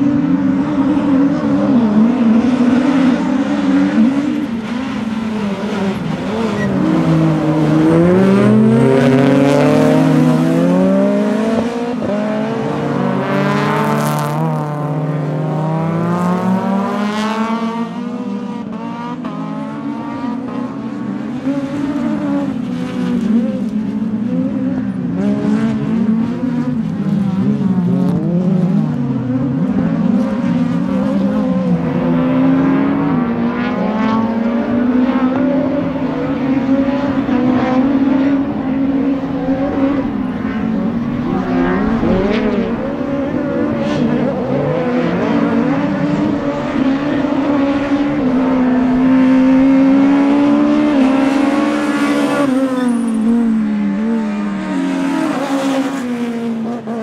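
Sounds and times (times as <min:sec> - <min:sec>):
rally cars racing at high revs: 0:00.0 - 0:57.0.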